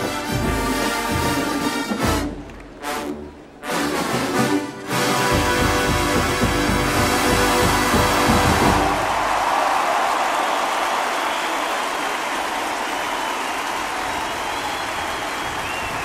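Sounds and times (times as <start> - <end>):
marching band brass and drums: 0.0 - 9.8
crowd cheering and applauding: 5.0 - 16.0.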